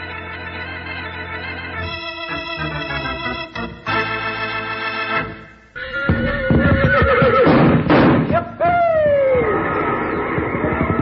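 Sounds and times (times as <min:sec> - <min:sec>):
horse whinnying: 0:05.8 - 0:07.7.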